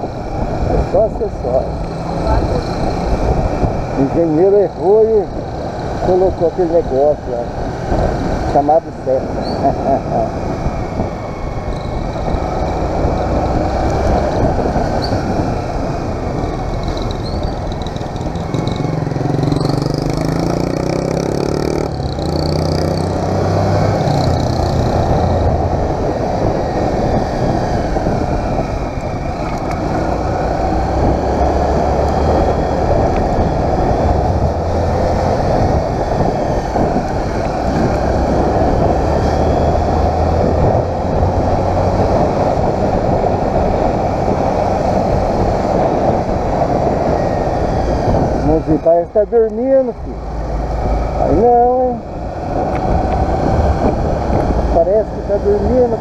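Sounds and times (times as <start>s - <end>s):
motorcycle engine accelerating: 0.0s - 56.0s
wind and road noise: 0.0s - 56.0s.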